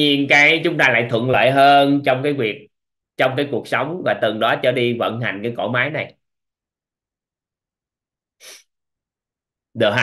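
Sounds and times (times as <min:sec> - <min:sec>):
sharp breath into microphone: 0:08.4 - 0:08.8.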